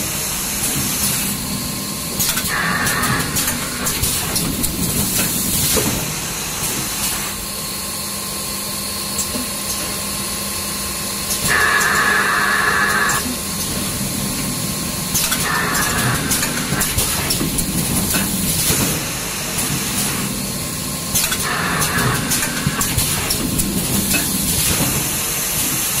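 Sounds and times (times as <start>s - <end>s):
machine humming: 10.8s - 24.6s
machine parts clicking and knocking: 21.2s - 25.0s.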